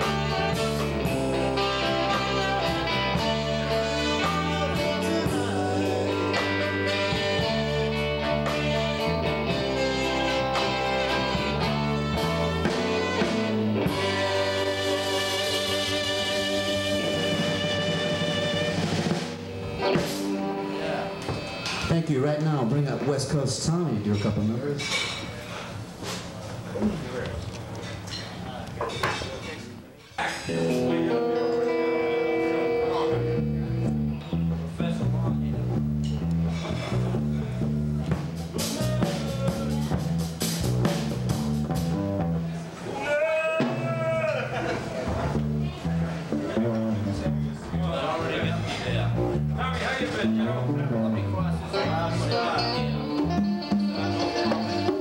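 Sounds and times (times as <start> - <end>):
live band playing: 0.0 - 24.8, 30.4 - 55.0
background chatter: 0.0 - 55.0
person singing: 1.0 - 7.6
congas: 52.6 - 55.0.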